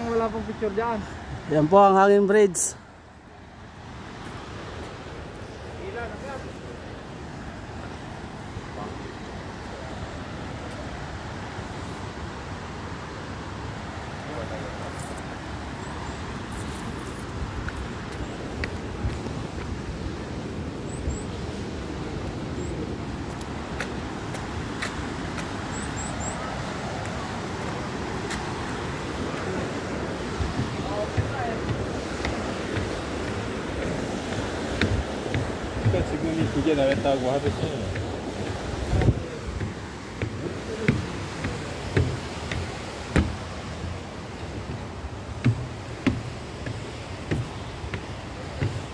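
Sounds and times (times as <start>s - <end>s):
rushing outdoor background noise: 0.0s - 48.9s
footsteps on wooden stairs: 14.8s - 48.9s
footsteps on paving: 26.6s - 48.9s.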